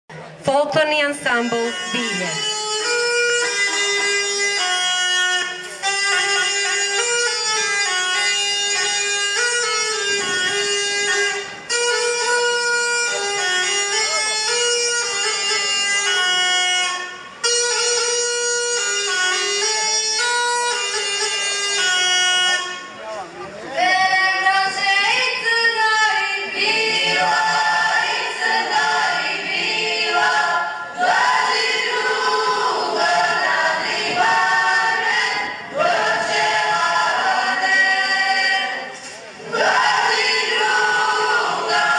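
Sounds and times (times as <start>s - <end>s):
bagpipe-like reed instrument: 0.6s - 23.4s, 25.6s - 38.6s
women singing together: 23.8s - 41.9s.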